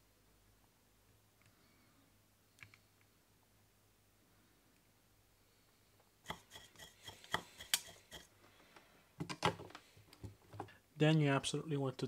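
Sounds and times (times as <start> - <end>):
hand tools clicking and tapping: 6.3 - 8.3.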